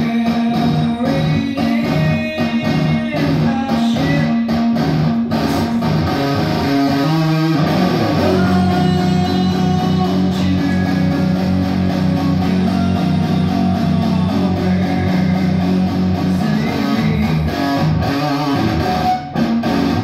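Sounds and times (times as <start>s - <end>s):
electric guitar rock riff: 0.0s - 20.0s.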